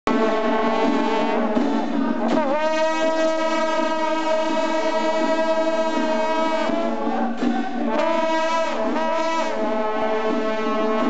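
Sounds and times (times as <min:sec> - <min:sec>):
wind instrument long held note: 0:00.1 - 0:11.0.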